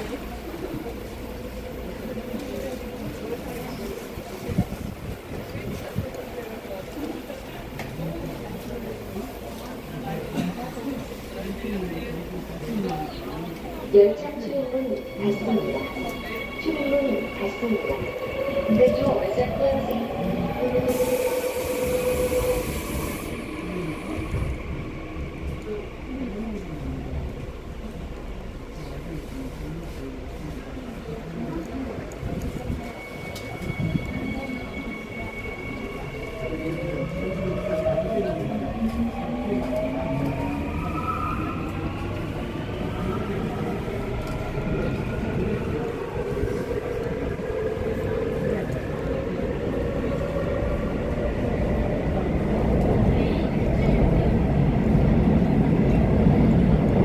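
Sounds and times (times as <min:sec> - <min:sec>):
train wheels rumbling on rails: 0:00.0 - 0:57.0
hiss: 0:20.8 - 0:24.3.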